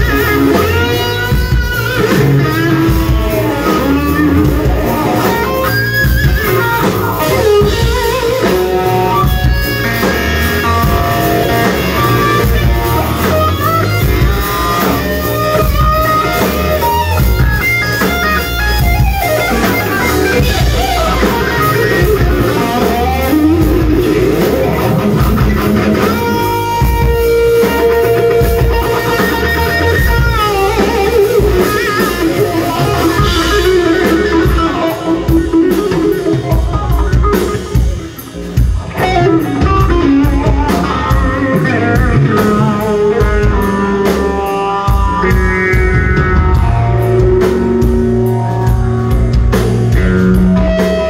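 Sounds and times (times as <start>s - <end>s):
bass guitar: 0.0s - 51.0s
drums: 0.0s - 51.0s
electric guitar lead: 0.0s - 51.0s.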